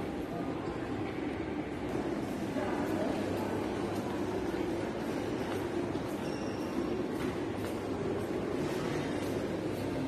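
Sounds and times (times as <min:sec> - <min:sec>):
shopping mall ambient rumble: 0:00.0 - 0:10.0.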